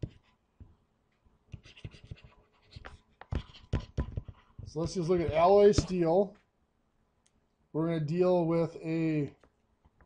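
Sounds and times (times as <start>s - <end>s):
stylus scratching on tablet: 0.0s - 0.4s, 1.5s - 6.1s.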